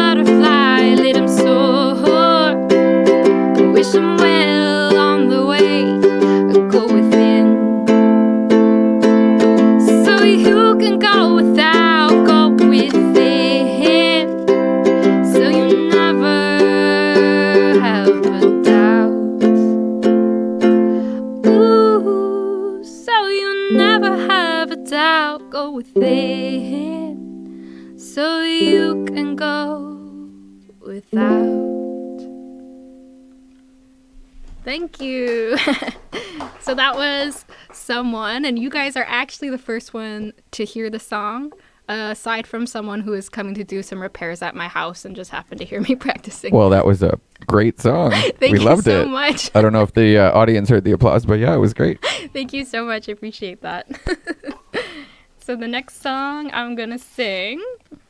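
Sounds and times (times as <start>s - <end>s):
woman singing: 0.0s - 8.0s, 9.6s - 19.8s, 21.2s - 27.3s, 28.0s - 31.9s, 48.2s - 49.5s
strummed ukulele: 0.0s - 37.2s, 45.8s - 52.2s.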